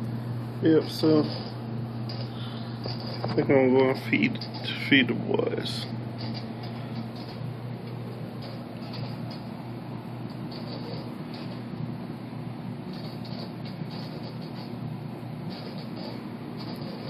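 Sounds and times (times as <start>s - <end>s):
aquarium pump humming: 0.0s - 17.0s.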